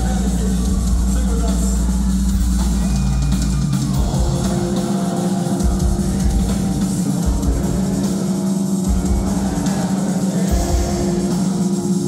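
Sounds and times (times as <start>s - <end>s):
bass guitar: 0.0s - 8.2s, 8.9s - 9.9s
distorted electric guitars: 0.0s - 12.0s
pounding drum kit: 0.0s - 12.0s.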